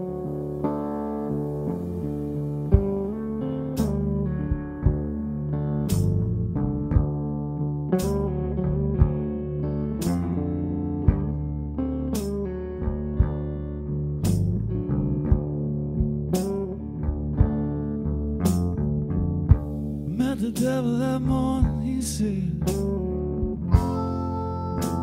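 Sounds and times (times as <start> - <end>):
blues band playing live: 0.0 - 25.0.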